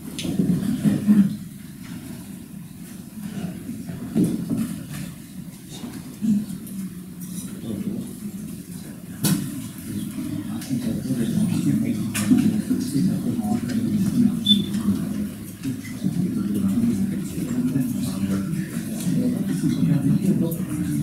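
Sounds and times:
murmur of people talking: 0.0 - 21.0.

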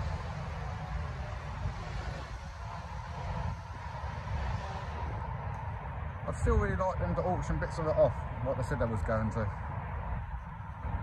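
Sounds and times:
distant tree-cutting machinery: 0.0 - 7.9
low rumble: 0.0 - 7.9.

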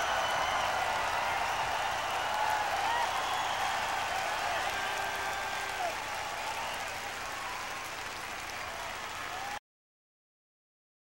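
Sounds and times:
audience applauding: 0.0 - 9.6.

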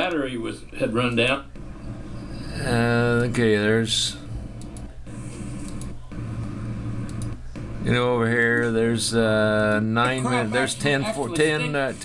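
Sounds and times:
steady low hum: 0.0 - 12.0
faint clicks: 4.6 - 4.9, 5.6 - 7.4.

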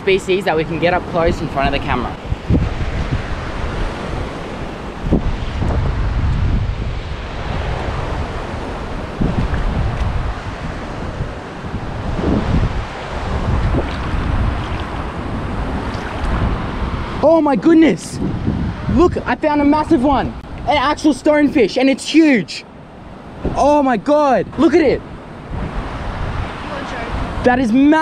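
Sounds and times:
wind buffeting microphone: 0.0 - 21.8, 22.7 - 28.0
surf on rocky shore: 0.0 - 28.0.

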